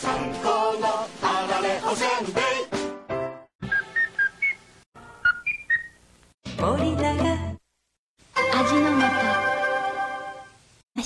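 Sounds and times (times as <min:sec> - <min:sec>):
whistled jingle: 0:03.7 - 0:04.6.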